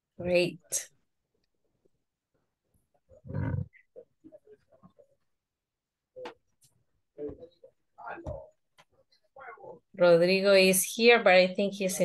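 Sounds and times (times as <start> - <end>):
rough vocal burst: 3.2 - 3.8.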